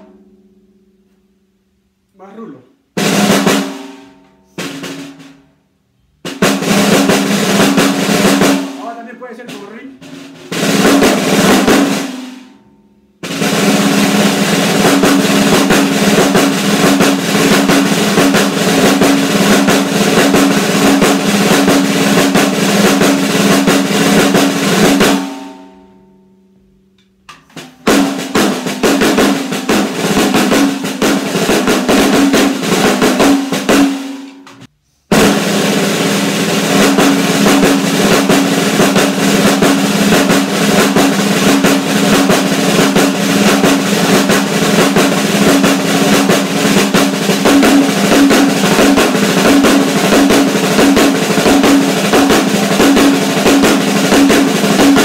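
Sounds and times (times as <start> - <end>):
snare drum strokes and rolls: 3.0 - 5.6, 6.2 - 12.6, 13.2 - 25.8, 27.3 - 55.0.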